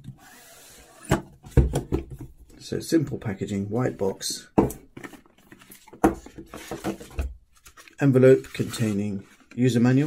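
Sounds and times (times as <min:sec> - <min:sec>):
cardboard scraping and rustling: 0:05.0 - 0:10.0.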